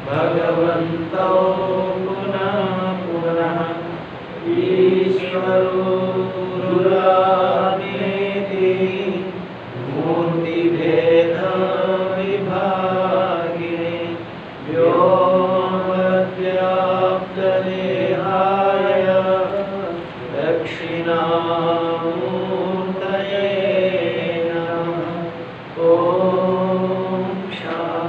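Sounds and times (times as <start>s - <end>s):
man chanting: 0.0s - 28.0s
steady low hum: 0.0s - 28.0s.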